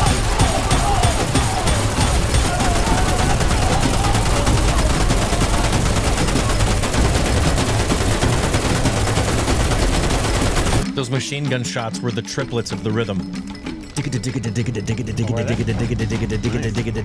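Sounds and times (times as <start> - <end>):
machine-gun fire: 0.0 - 10.9.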